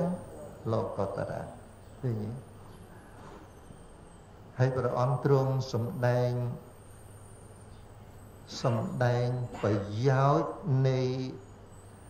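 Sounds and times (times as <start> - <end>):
man chanting: 0.0 - 2.5, 4.6 - 6.7, 8.5 - 11.4
faint room hum: 0.0 - 12.0.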